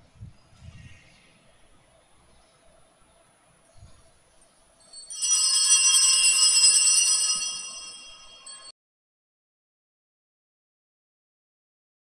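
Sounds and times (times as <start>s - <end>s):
small bells jingling: 4.8s - 8.7s.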